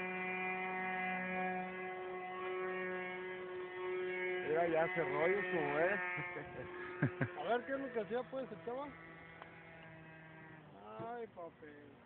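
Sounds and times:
model airplane motor buzzing: 0.0s - 12.0s.

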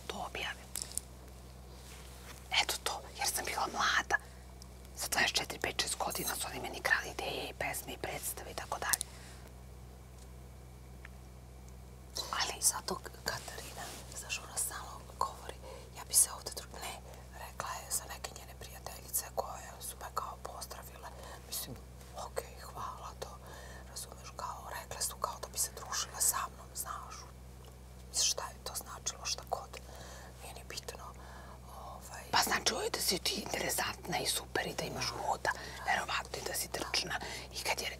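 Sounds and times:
women whispering: 0.0s - 0.6s, 2.5s - 4.2s, 12.2s - 27.2s, 30.4s - 37.9s
low electrical hum: 0.0s - 37.9s.

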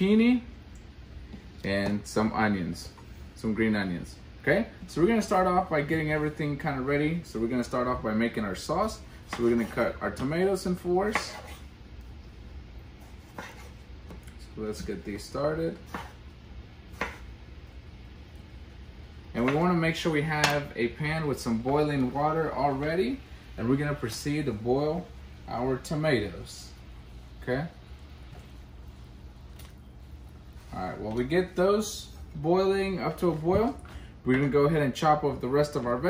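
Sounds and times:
low steady hum: 0.0s - 36.0s
knife cutting tomato: 13.0s - 14.3s.

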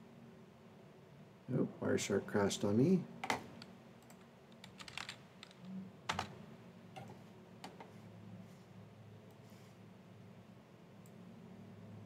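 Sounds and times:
keyboard keystrokes: 4.0s - 6.3s.

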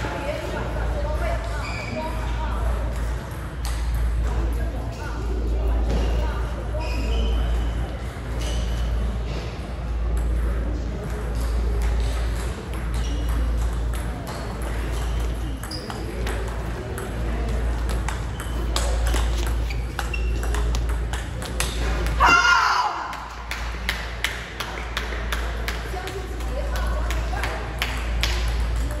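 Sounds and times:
low hall hum: 0.0s - 29.0s
ping pong ball clicking: 10.2s - 22.2s.

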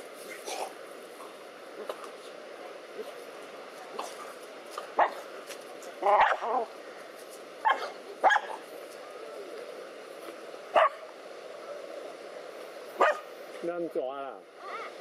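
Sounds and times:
dogs barking: 6.0s - 6.7s, 7.6s - 8.6s, 10.7s - 11.0s, 13.0s - 13.3s.

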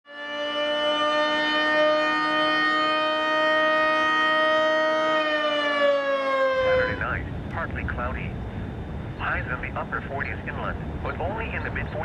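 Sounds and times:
warning siren steady tone: 0.1s - 7.5s.

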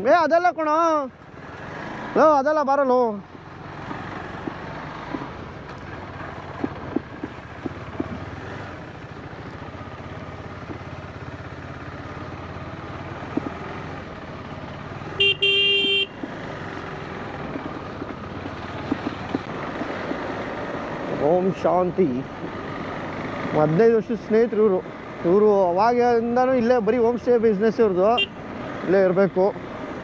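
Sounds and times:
motorcycle engine running: 1.1s - 30.0s
horn sounding: 15.1s - 16.2s.

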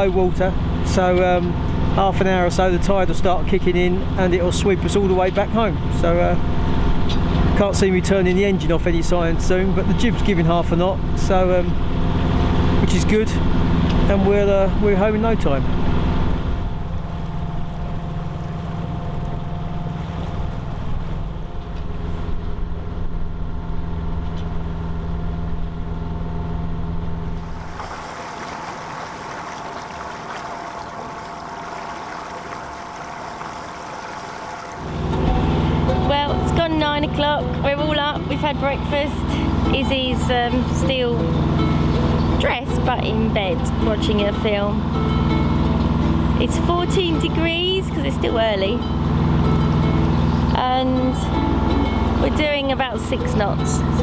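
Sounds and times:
boat engine humming: 0.0s - 54.0s.

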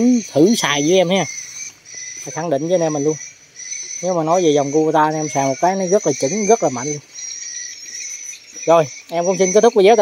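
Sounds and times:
insects chirring: 0.0s - 10.0s.

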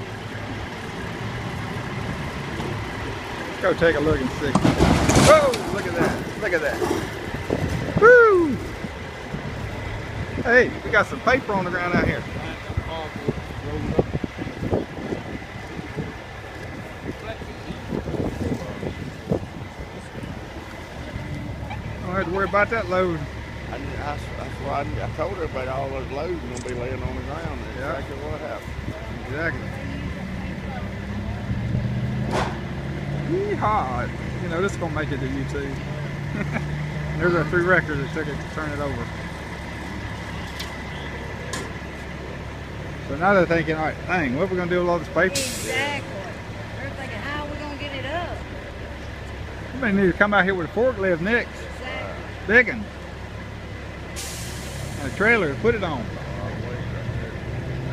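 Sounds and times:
diesel engines idling: 0.0s - 57.9s
low rumble of vehicles: 0.0s - 57.9s
wind on microphone: 7.2s - 9.5s, 12.0s - 21.4s.

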